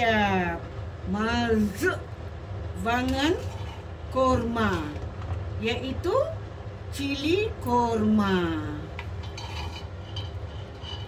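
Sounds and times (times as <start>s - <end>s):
steady low hum: 0.0s - 11.0s
metal ladle scraping cooking pot: 3.1s - 4.0s, 9.0s - 11.0s.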